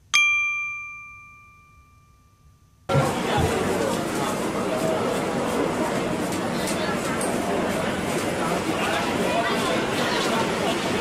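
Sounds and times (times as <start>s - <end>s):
bright metallic bell ding: 0.1s - 2.7s.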